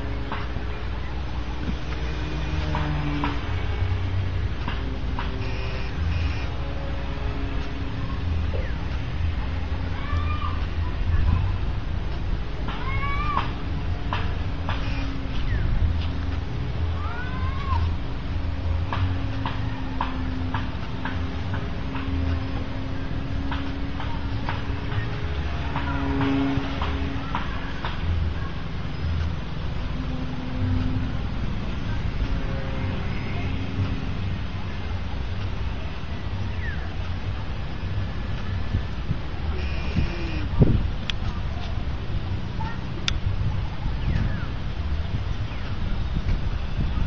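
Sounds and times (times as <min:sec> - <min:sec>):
wind rumble on microphone: 0:00.0 - 0:47.0
model airplane motor droning: 0:05.0 - 0:08.0, 0:39.5 - 0:40.6.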